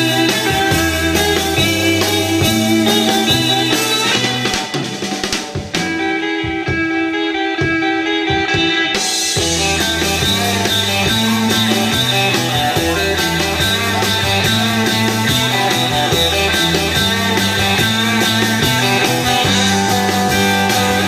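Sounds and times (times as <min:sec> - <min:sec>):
surf rock band playing: 0:00.0 - 0:21.0.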